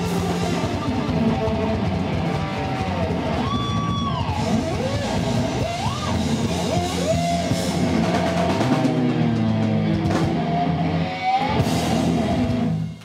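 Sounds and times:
electric lead guitar bends: 0.0s - 13.0s
rock band playing: 0.0s - 13.0s.

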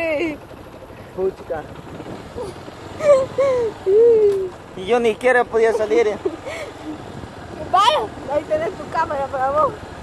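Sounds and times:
motorcycle engine running: 0.0s - 10.0s
wind noise on microphone: 6.8s - 10.0s.

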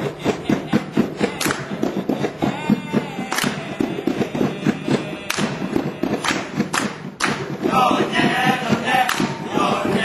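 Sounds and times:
sharp hand claps: 1.2s - 1.9s, 3.2s - 3.7s, 5.2s - 7.6s, 9.0s - 9.4s.

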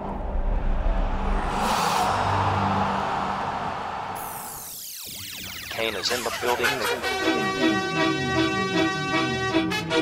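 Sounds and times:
low rumble: 0.0s - 4.5s
swelling whoosh: 0.0s - 4.8s.

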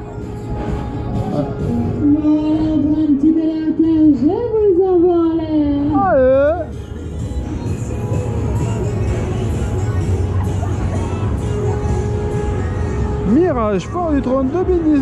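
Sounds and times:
fairground ride music: 0.0s - 15.0s
moving ride drone and rush: 0.0s - 15.0s.

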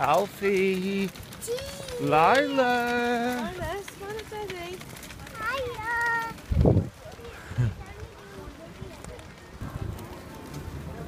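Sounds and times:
distant voices: 0.0s - 11.0s
low rumble of wind: 0.0s - 11.0s.

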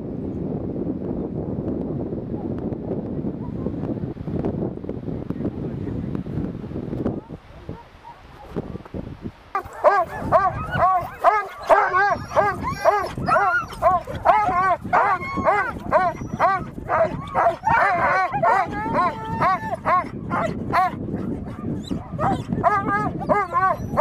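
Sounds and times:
dogs barking and yelping: 7.2s - 8.6s, 9.6s - 24.0s
dog whining: 9.6s - 20.9s, 21.8s - 24.0s.

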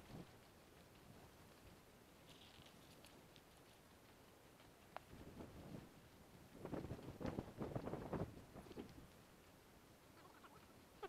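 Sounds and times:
wind on microphone: 5.1s - 6.0s, 6.6s - 9.1s.

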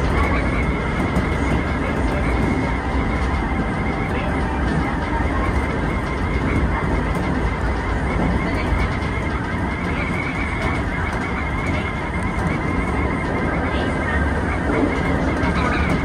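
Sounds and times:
train wheels rumbling on rails: 0.0s - 16.0s.

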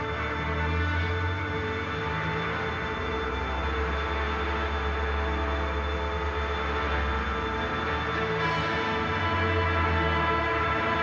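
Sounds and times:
held tones over low drone: 0.0s - 11.0s.

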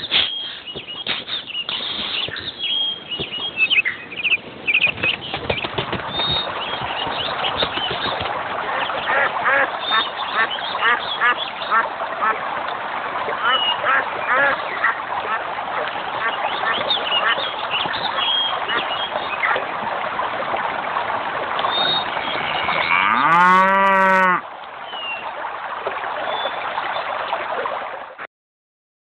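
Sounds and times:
birds chirping: 0.0s - 11.8s, 13.4s - 15.0s, 15.8s - 19.6s, 21.6s - 25.3s
cow mooing: 22.2s - 24.4s.

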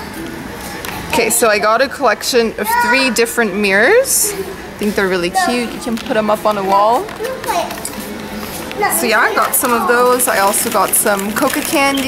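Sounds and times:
background voices: 4.2s - 12.0s.

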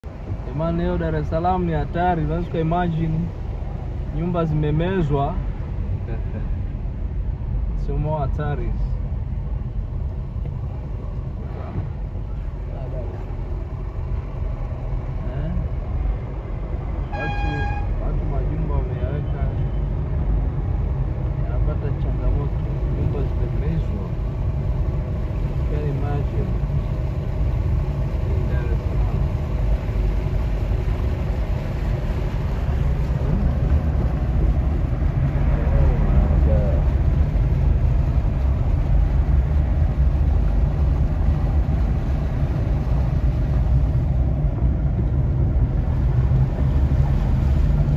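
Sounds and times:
traffic rumble: 0.0s - 47.9s
vehicle horn toot: 17.0s - 18.0s.

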